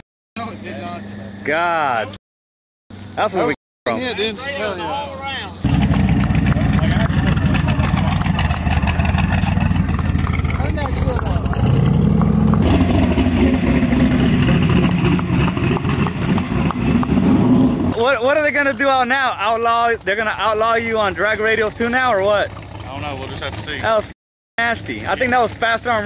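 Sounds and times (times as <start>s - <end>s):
race car engine running loudly: 5.6s - 18.0s.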